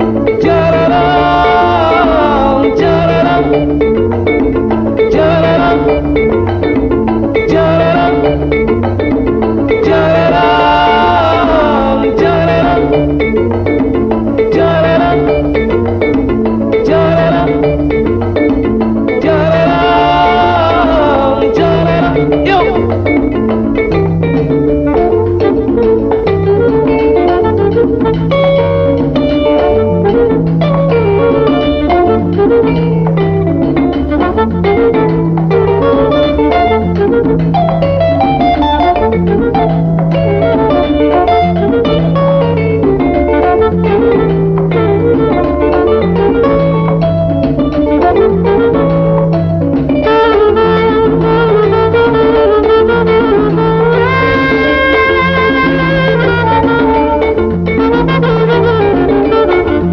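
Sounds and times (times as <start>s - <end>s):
instrumental salsa band: 0.0s - 59.9s.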